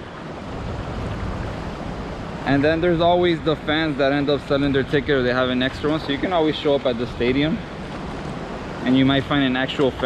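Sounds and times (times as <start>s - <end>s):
sea surf on a beach: 0.0s - 10.0s
wind rumbling on microphone: 0.0s - 10.0s.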